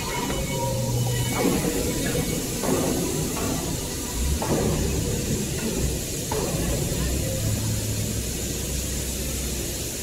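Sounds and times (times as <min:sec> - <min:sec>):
machinery high hiss: 0:00.0 - 0:10.0
machinery low rumble: 0:00.0 - 0:10.0.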